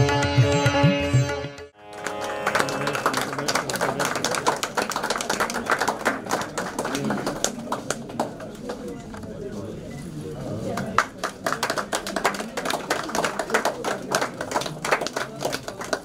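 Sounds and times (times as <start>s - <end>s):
people clapping: 1.8s - 9.4s, 10.6s - 16.0s
many people talking: 1.8s - 16.0s.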